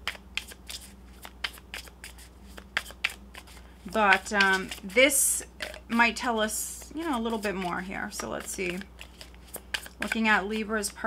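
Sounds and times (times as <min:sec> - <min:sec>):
cards being shuffled: 0:00.0 - 0:06.0, 0:08.4 - 0:10.2.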